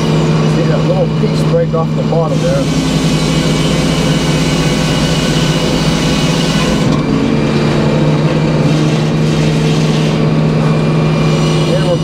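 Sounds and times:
engine running steadily: 0:00.0 - 0:12.0
saw blade cutting wood: 0:02.1 - 0:07.1, 0:07.7 - 0:12.0.

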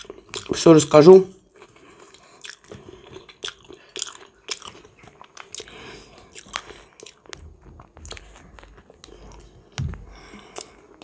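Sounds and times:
person chewing with wet smacks: 0:00.0 - 0:00.6, 0:01.5 - 0:11.0.

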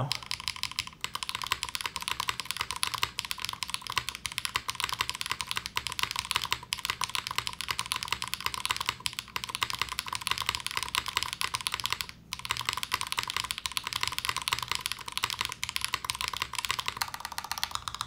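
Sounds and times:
mechanical keyboard typing: 0:00.0 - 0:18.0.

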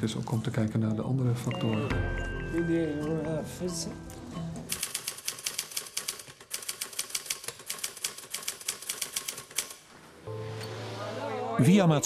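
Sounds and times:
typewriter keystrokes clattering: 0:04.7 - 0:09.8.

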